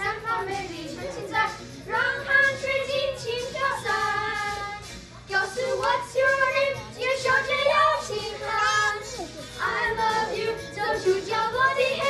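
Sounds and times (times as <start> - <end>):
children singing into microphones: 0.0 - 12.0.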